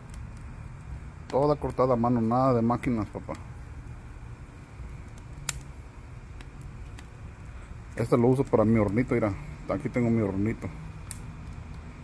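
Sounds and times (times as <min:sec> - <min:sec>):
low steady rumble: 0:00.0 - 0:12.0
wood fire crackling and popping: 0:00.0 - 0:12.0.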